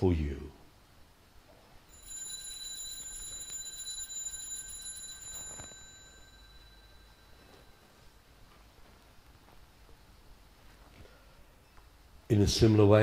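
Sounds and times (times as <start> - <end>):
altar bells ringing: 1.9 - 8.3.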